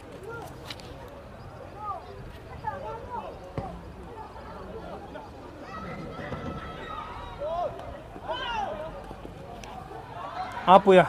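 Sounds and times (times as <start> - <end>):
players shouting: 1.3 - 11.0.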